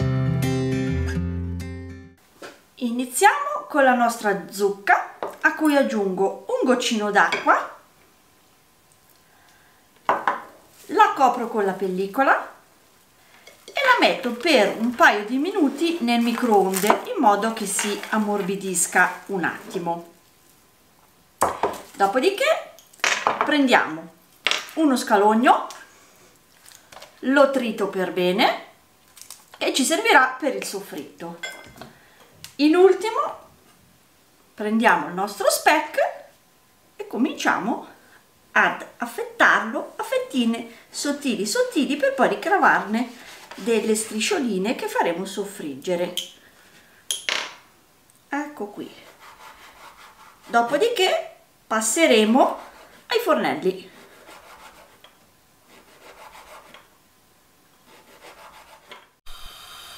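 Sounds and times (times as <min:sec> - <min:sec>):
small glass clinks: 0:31.4 - 0:31.8, 0:47.1 - 0:47.4
knife scraping board: 0:49.0 - 0:50.8, 0:54.0 - 0:55.1, 0:55.7 - 0:56.9, 0:57.9 - 0:59.1.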